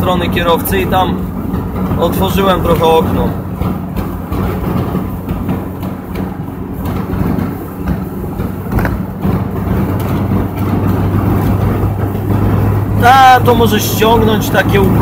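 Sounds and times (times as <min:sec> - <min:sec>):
car engine hum: 0:00.0 - 0:15.0
road noise: 0:00.0 - 0:15.0
wind noise through car windows: 0:00.0 - 0:15.0.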